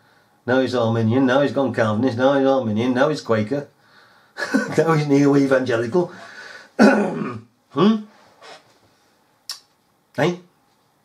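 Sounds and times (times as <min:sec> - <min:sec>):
man speaking: 0:04.5 - 0:06.4, 0:07.7 - 0:08.1.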